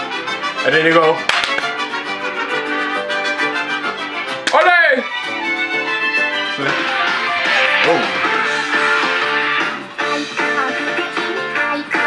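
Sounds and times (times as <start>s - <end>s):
mariachi music with trumpets and violins: 0.0s - 12.0s.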